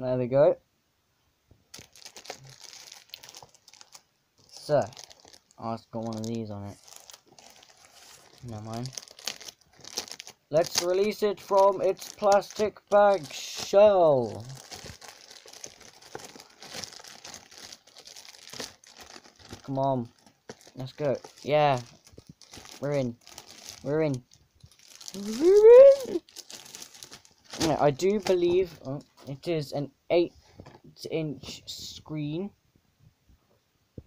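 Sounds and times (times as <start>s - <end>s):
plastic wrapping crinkling: 1.7s - 29.5s.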